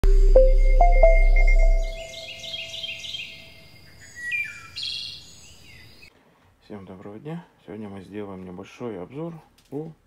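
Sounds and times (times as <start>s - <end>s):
held musical note: 0.0s - 3.0s
songbird chirping: 0.0s - 6.1s.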